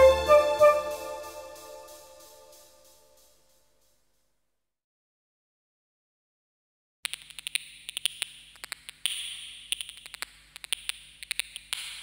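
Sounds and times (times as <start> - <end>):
electronic clicks and ticks: 7.1 - 12.0.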